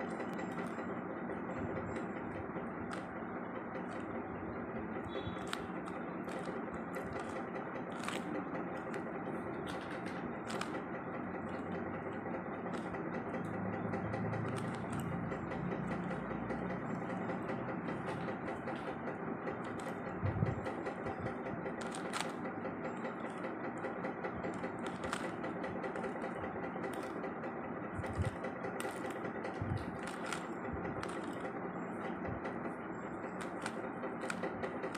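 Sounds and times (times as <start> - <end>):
plastic puzzle layers clicking: 0.0 - 1.0, 1.9 - 4.3, 5.0 - 32.6, 33.2 - 34.9
steady background hum: 0.0 - 34.9.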